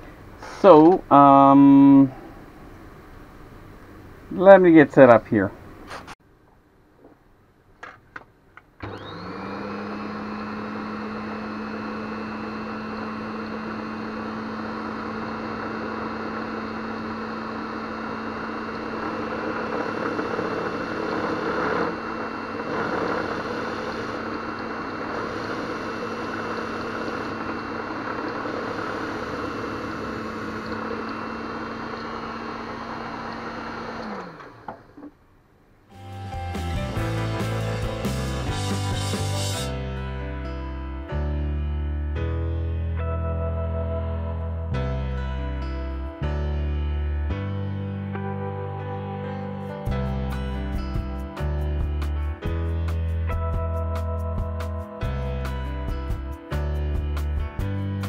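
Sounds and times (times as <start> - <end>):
mill motor hum and whine: 8.8 - 35.3
drill bit boring into resin: 10.2 - 34.6.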